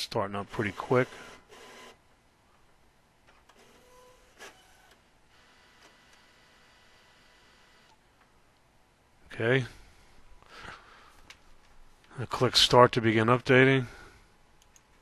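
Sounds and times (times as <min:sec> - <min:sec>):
printer mechanism noise: 0:00.4 - 0:02.0, 0:03.3 - 0:06.3.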